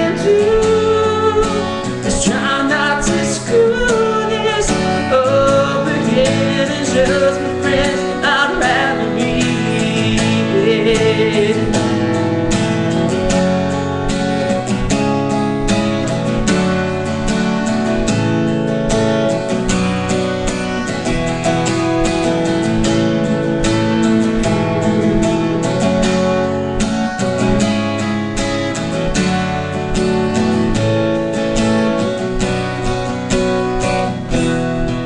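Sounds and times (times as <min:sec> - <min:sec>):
acoustic guitar strumming: 0:00.0 - 0:35.0.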